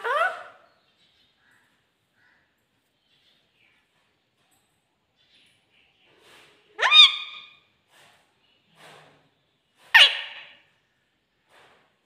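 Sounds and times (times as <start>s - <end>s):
parakeet calls: 0.0s - 0.8s, 6.8s - 7.6s, 9.9s - 10.7s
faint bird chatter: 0.0s - 11.8s.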